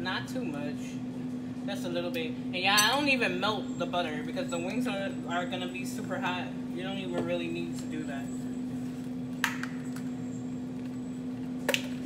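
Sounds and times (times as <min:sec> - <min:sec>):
air fryer humming: 0:00.0 - 0:12.0.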